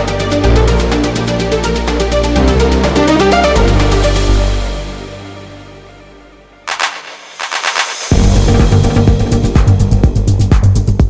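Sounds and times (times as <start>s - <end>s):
electronic dance music: 6.7s - 11.0s
rapid sharp percussive hits: 6.7s - 11.0s.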